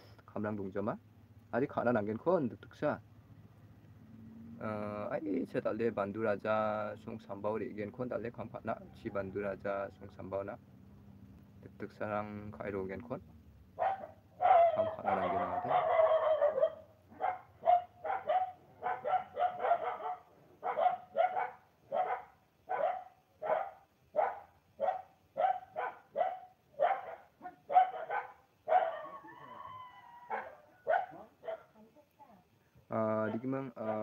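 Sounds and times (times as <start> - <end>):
dog barking: 13.8 - 29.6, 30.2 - 31.8, 33.2 - 34.0.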